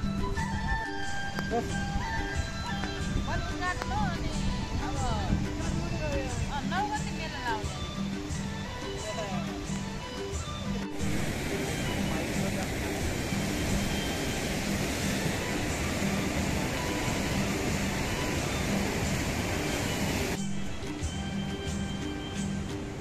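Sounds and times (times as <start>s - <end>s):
background music: 0.0s - 23.0s
river rapids rushing: 0.2s - 23.0s.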